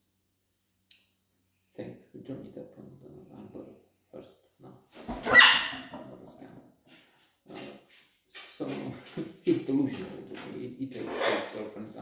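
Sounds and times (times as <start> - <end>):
macaw squawking: 5.3 - 5.9.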